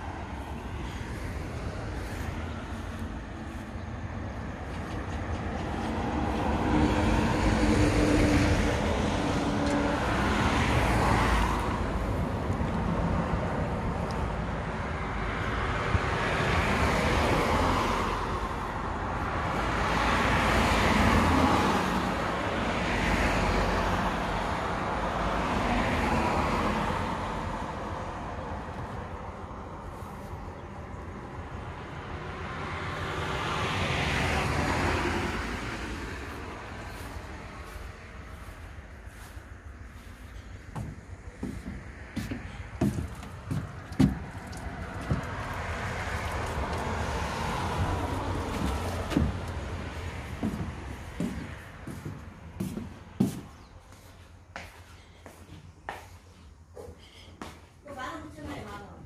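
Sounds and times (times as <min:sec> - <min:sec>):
cars passing: 0:00.0 - 0:59.0.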